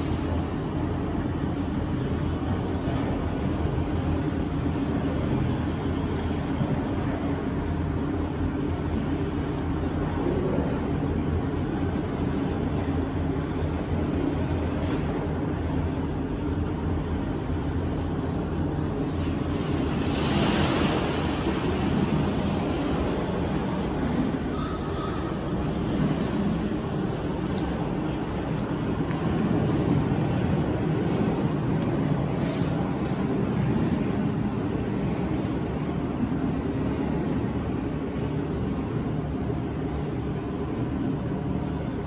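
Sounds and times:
low hum: 0.0s - 42.0s
ocean surf wash: 19.0s - 32.8s.

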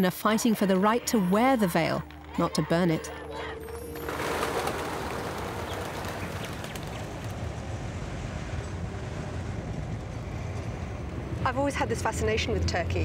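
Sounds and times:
traffic rumble: 0.0s - 13.0s.

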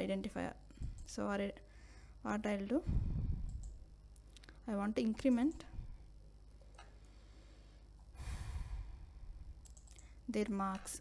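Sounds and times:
faint low hum: 0.0s - 11.0s
breath let out close to microphone: 8.2s - 9.2s.

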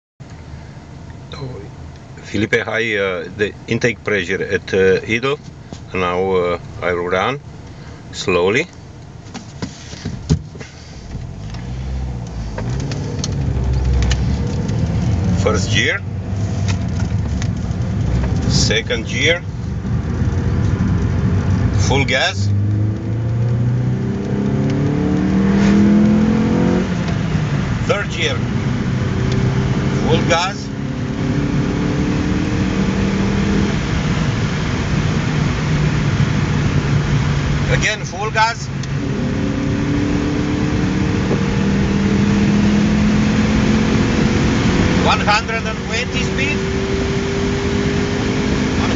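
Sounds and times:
car engine low hum: 0.2s - 48.9s
road noise: 0.2s - 48.9s.

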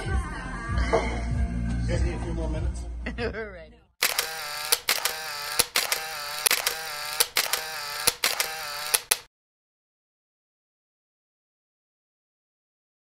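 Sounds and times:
camera motor-drive whir: 4.0s - 9.3s
camera shutter clicking: 4.0s - 9.3s.

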